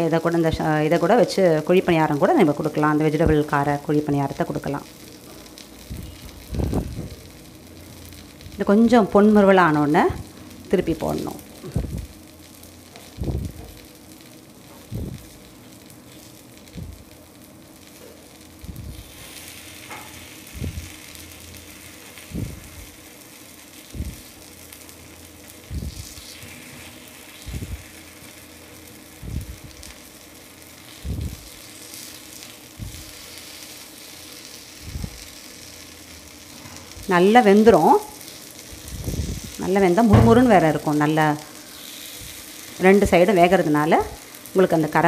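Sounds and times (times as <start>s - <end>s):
batter sizzling in oil: 0.0s - 45.0s.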